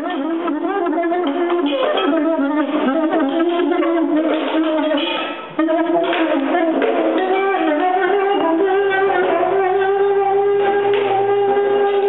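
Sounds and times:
soprano saxophone melody: 0:00.0 - 0:12.0.

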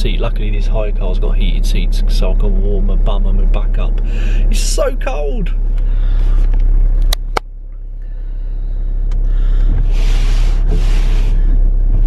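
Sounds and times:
car engine and road rumble: 0:00.0 - 0:12.0
windscreen wipers swishing: 0:09.1 - 0:12.0.

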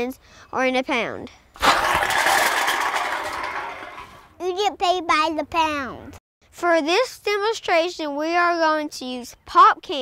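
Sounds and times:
aluminum cans rattling on asphalt: 0:01.6 - 0:04.3.

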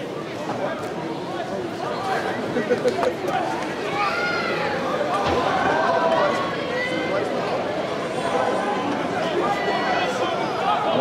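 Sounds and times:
indistinct voices chattering: 0:00.0 - 0:11.0
outdoor background noise: 0:00.0 - 0:11.0.

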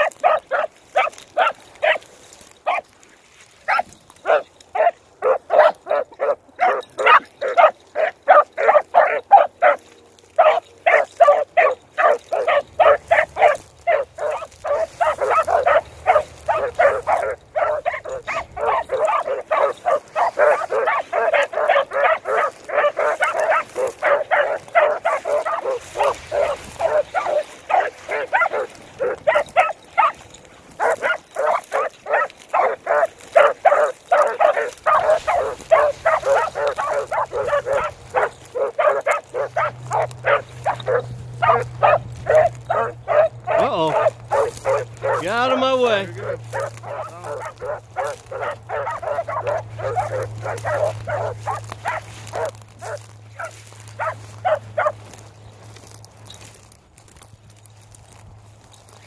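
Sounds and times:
dogs barking rapidly: 0:00.0 - 0:03.0, 0:03.6 - 0:59.0.

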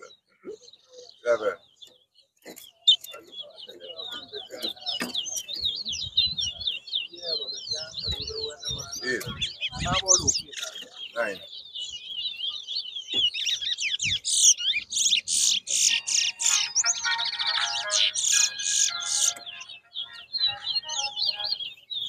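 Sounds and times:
finch singing whistled notes: 0:00.0 - 0:22.0.

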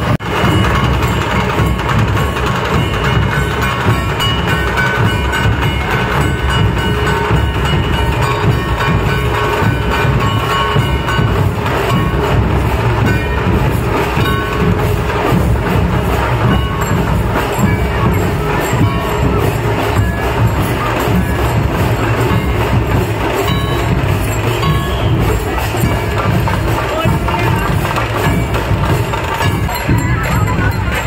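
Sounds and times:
barrel drums played together: 0:00.0 - 0:31.0.

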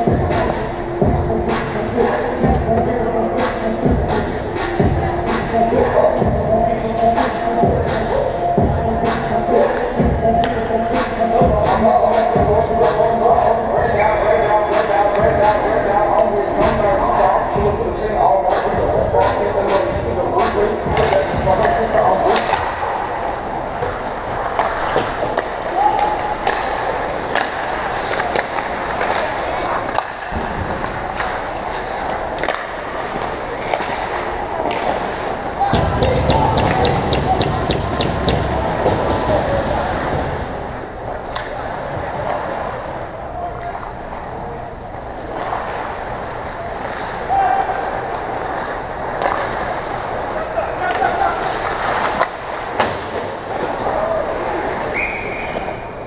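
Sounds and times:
players shouting: 0:00.0 - 0:40.1
hockey sticks and puck clicking: 0:09.0 - 0:13.3, 0:18.4 - 0:39.4, 0:41.2 - 0:41.6, 0:48.1 - 0:56.0
skates scraping ice: 0:18.3 - 0:43.0, 0:43.8 - 0:56.0.

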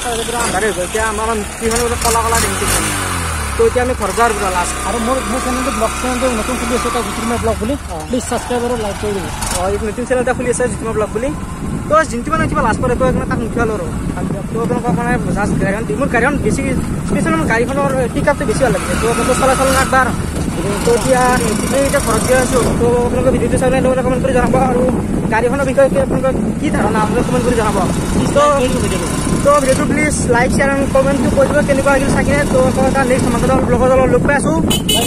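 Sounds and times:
men talking: 0:00.0 - 0:35.0
vehicle drone: 0:00.0 - 0:35.0.

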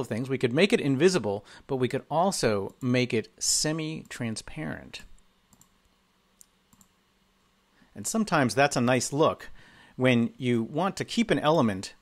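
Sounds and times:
computer mouse clicks: 0:05.2 - 0:05.8, 0:06.4 - 0:07.0.

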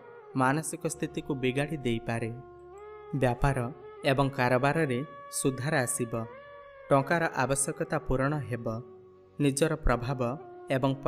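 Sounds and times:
faint background music tones: 0:00.0 - 0:11.0
person reading aloud: 0:03.2 - 0:06.3.

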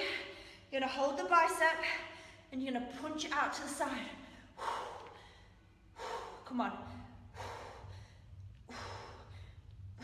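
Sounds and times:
woman breathing out forcefully: 0:04.3 - 0:06.5, 0:07.2 - 0:10.0.

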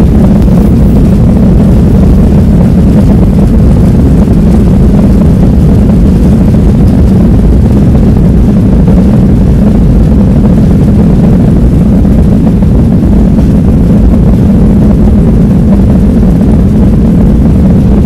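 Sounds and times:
jet engines roaring: 0:00.0 - 0:18.0
runway rumble: 0:00.0 - 0:18.0.

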